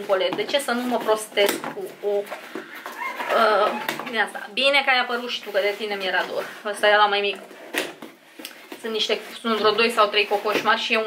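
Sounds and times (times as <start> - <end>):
rooster crowing: 2.9 - 3.9.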